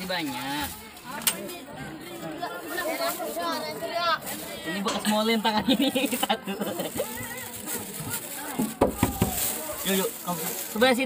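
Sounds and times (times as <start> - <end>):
plastic bag rustling: 0.0 - 11.0
children's voices: 0.2 - 4.9, 6.6 - 9.8.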